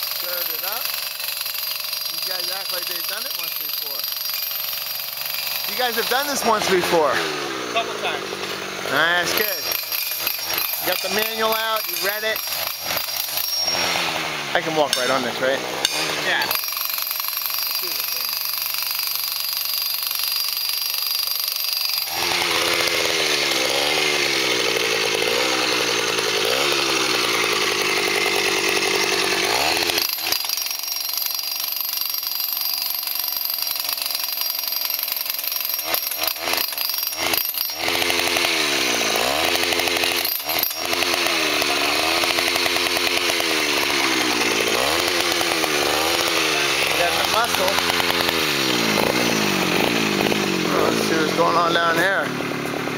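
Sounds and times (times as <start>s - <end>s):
petrol jackhammer driving stakes: 0.0s - 52.9s.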